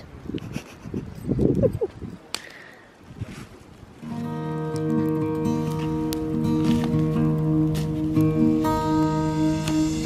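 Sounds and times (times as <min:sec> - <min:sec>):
bonfire crackling: 0:01.8 - 0:10.0
sharp crack of fire: 0:02.3 - 0:02.8, 0:04.0 - 0:10.0.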